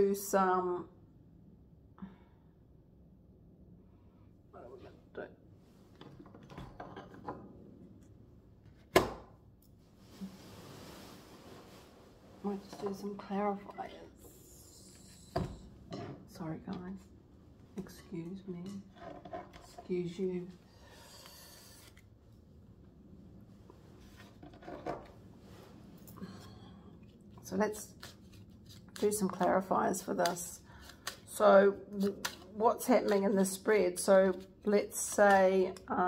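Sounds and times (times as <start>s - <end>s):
faint handling rustling: 9.7s - 14.2s.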